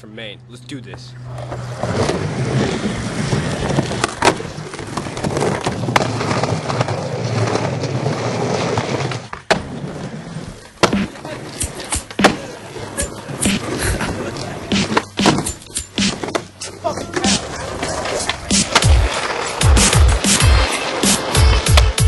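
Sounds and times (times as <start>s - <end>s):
skateboard wheels rolling: 1.3s - 22.0s
skateboard clacking on ground: 10.6s - 22.0s.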